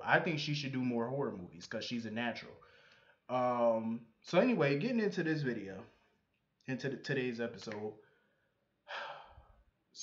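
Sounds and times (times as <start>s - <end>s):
man breathing out: 8.1s - 9.6s.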